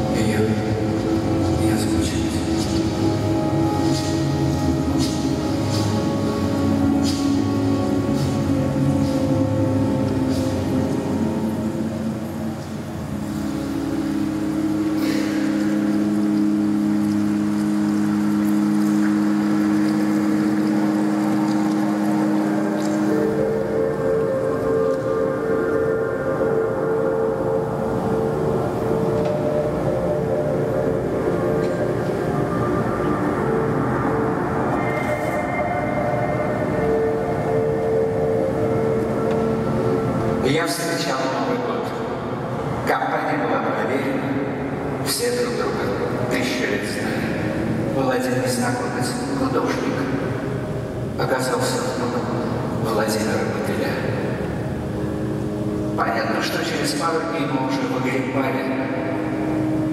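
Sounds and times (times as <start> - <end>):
organ playing chords: 0.0 - 59.9.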